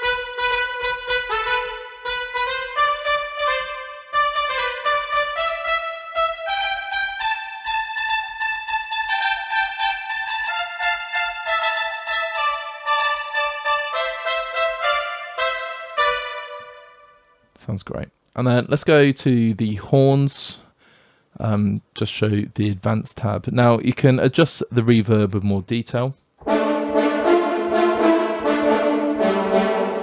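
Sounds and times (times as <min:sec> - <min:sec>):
trumpets playing short detached notes: 0:00.0 - 0:17.2, 0:26.4 - 0:30.0.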